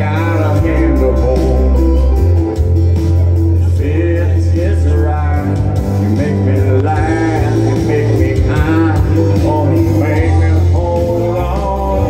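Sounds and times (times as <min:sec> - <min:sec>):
man singing into microphone: 0:00.0 - 0:02.6, 0:03.5 - 0:12.0
backing track with heavy bass: 0:00.0 - 0:12.0.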